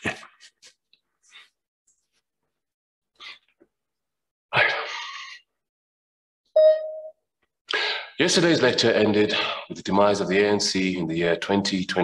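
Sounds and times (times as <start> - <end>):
electronic beep: 6.6 - 7.2.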